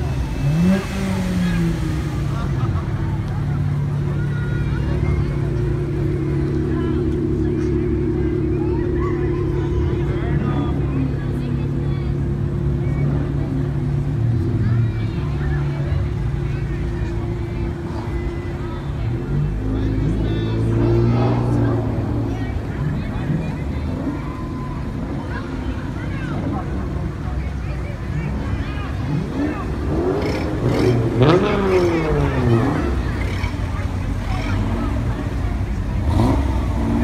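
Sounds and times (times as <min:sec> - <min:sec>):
car engines running slowly: 0:00.0 - 0:37.0
onlookers chattering: 0:00.0 - 0:37.0.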